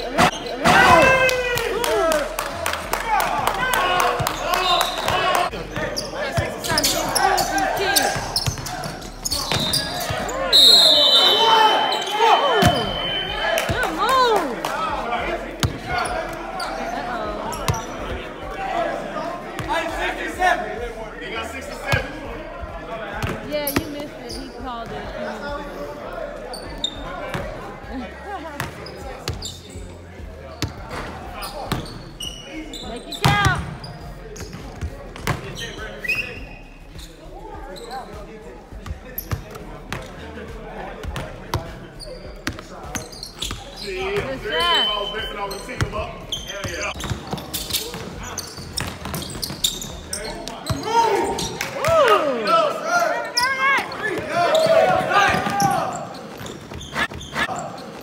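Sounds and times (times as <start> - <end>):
players' voices echoing: 0.0 - 58.0.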